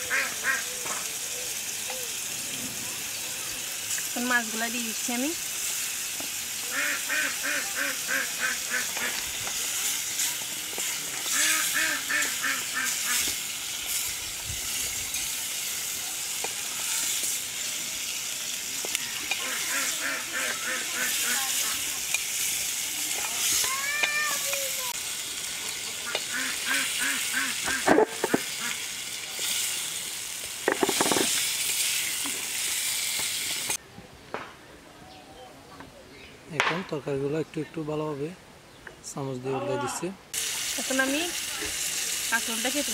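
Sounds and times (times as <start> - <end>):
curry sizzling in a pot: 0.0 - 33.8, 40.3 - 42.9.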